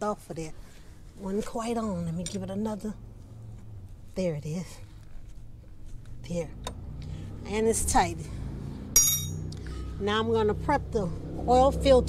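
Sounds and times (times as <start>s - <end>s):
metallic clink of wrench: 9.0s - 9.4s.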